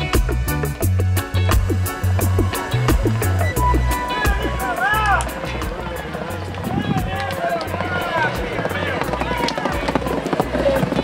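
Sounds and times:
upbeat music with deep bass: 0.0s - 11.0s.

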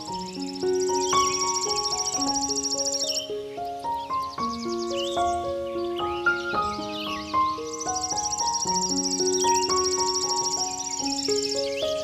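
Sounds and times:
high insect-like trill: 0.0s - 3.3s, 6.6s - 12.0s
chirping calls: 0.0s - 12.0s
slow gentle solo piano: 0.0s - 12.0s.

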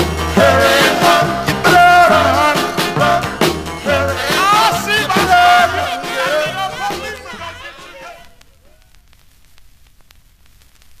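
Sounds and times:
vinyl surface hiss and rumble: 6.0s - 11.0s
vinyl crackle clicks: 8.2s - 11.0s.

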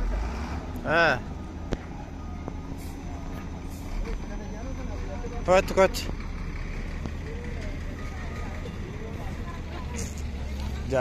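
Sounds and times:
truck engine rumbling: 0.0s - 11.0s
faint voices: 0.8s - 11.0s.

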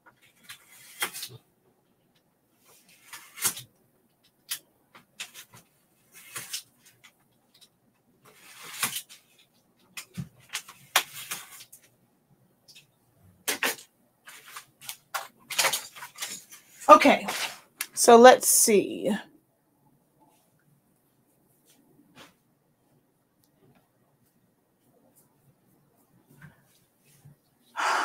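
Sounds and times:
craft knife cutting foam board: 8.3s - 9.1s.

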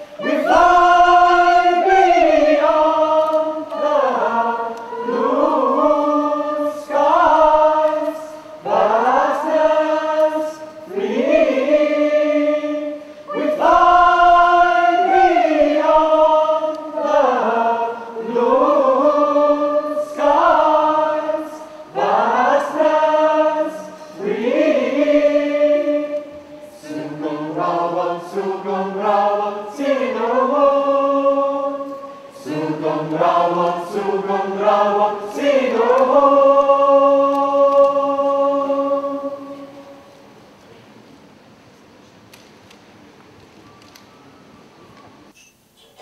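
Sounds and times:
group of voices singing: 0.0s - 40.3s
singers breathing: 13.0s - 13.4s, 21.6s - 22.0s, 23.9s - 24.2s, 32.0s - 32.4s.

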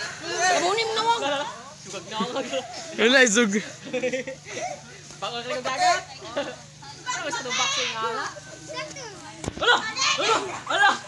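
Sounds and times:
children shouting: 0.0s - 1.2s, 7.0s - 11.0s.

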